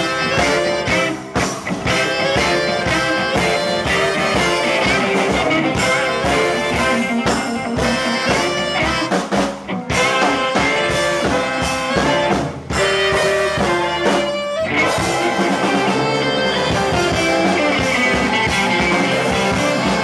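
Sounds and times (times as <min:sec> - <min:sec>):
live blues band: 0:00.0 - 0:20.0
saxophones playing riffs: 0:00.0 - 0:20.0.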